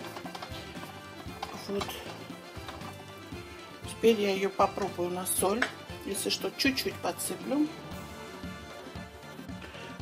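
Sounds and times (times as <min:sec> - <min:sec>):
wooden spatula scraping frying pan: 0:00.0 - 0:05.9
background music: 0:00.0 - 0:10.0.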